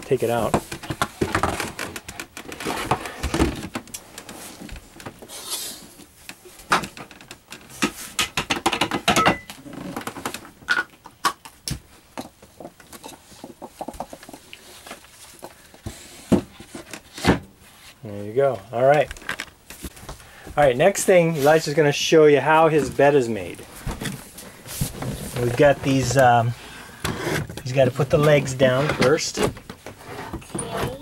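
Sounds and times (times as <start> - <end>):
table parts knocking and rattling: 7.7 - 11.5.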